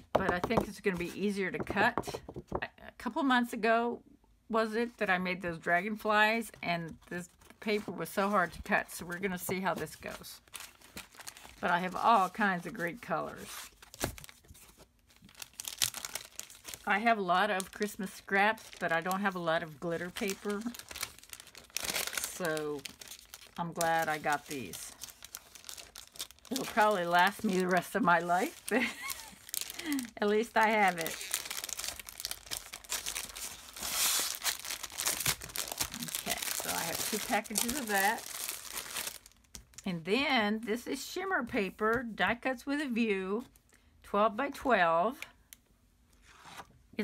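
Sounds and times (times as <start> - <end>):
card stock rustling: 6.9 - 39.7
plastic packaging crinkling: 6.9 - 39.9.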